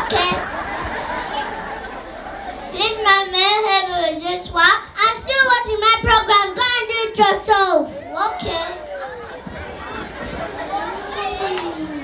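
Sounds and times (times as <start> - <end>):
child singing into a microphone: 2.8 - 8.8.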